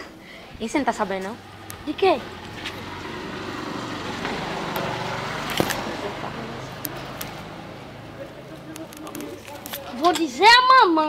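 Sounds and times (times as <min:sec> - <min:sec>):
vehicle engine running: 0:00.7 - 0:09.9.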